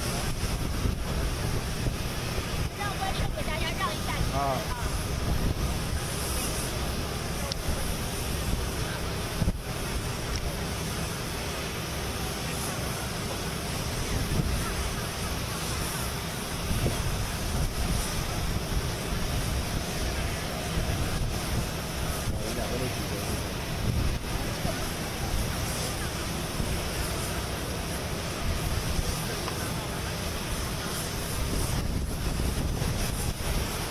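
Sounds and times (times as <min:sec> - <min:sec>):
wind buffeting microphone: 0:00.0 - 0:12.1, 0:12.9 - 0:33.9
low rumble and hiss: 0:00.0 - 0:33.9.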